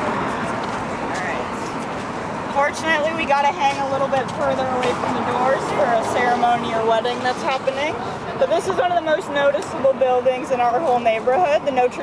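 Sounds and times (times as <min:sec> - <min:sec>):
people talking: 0:00.0 - 0:01.7, 0:02.5 - 0:12.0
road traffic passing: 0:00.0 - 0:12.0.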